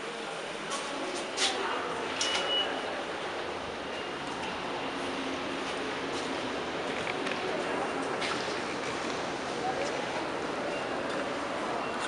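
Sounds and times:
elevator hum and rumble: 1.8 - 12.0
short high beep: 2.2 - 2.8.

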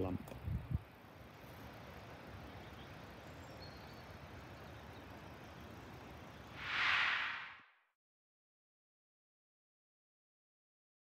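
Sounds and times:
brief whoosh: 6.6 - 7.8.

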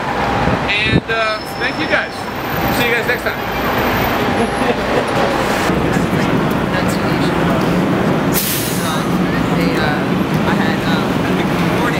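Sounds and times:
bus engine running: 0.0 - 11.9
city traffic: 0.0 - 11.9
air brakes hissing: 8.3 - 9.0.

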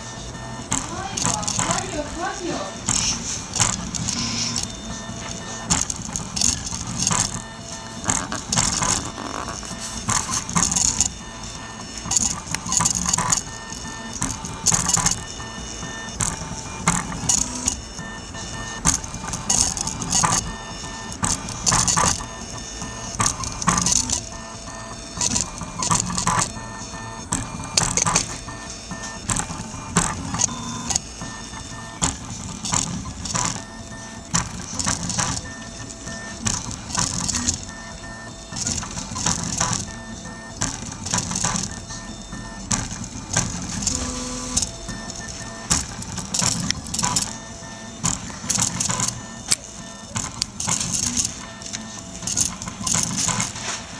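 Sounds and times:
printer stepper motors whining: 0.0 - 53.9.

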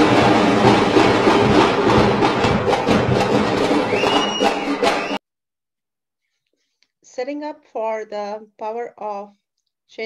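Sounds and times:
music: 0.0 - 5.2
crowd noise: 3.3 - 5.2.

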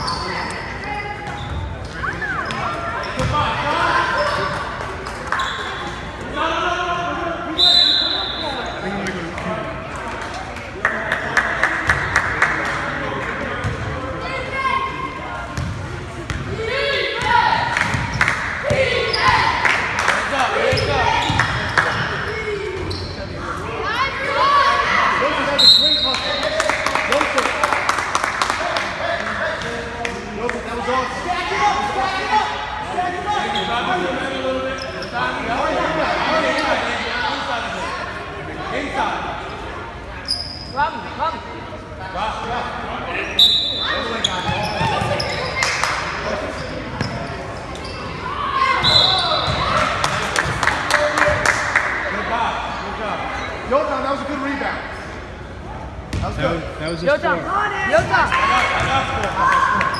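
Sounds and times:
chatter of people: 0.0 - 59.9.

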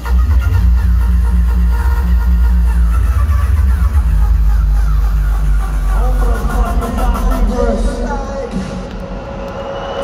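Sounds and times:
hardcore dance music: 0.0 - 8.9.

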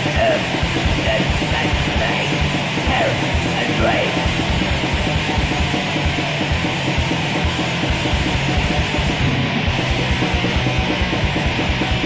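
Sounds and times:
distorted guitar: 0.0 - 12.0
fast drumming: 0.0 - 12.0.

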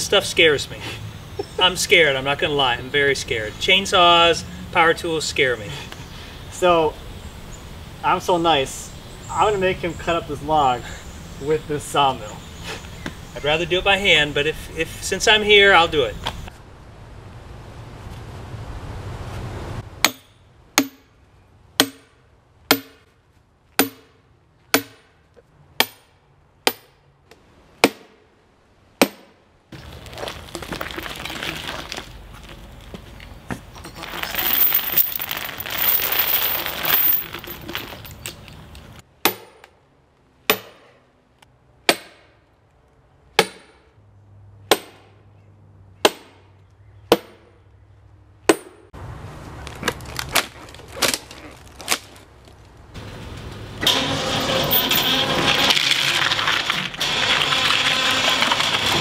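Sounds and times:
hammer striking metal wedge: 20.0 - 21.1, 21.8 - 22.1, 22.7 - 23.0, 23.8 - 24.1, 24.7 - 25.1, 43.4 - 43.8.

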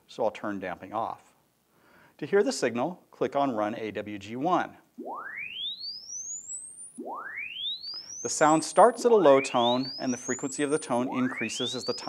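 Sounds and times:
rising sine-wave sweep: 5.0 - 12.0.

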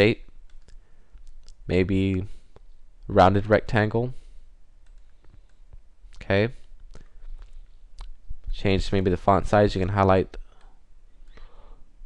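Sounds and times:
computer mouse clicks: 0.3 - 1.6, 4.8 - 5.8
person speaking: 1.5 - 4.3, 8.0 - 10.5.

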